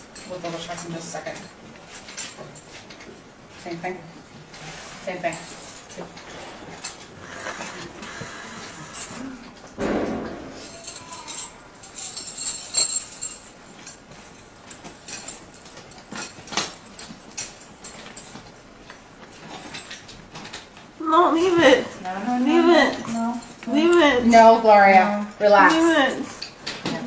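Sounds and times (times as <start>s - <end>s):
straps and buckles clicking: 0.0s - 9.8s, 10.7s - 27.0s
rustling: 0.0s - 27.0s.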